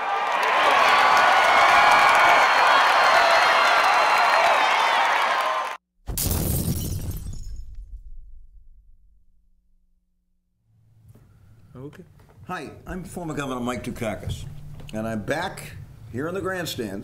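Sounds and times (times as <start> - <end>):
stadium crowd roar: 0.0 - 5.8
loud crash with shattering: 6.1 - 8.2.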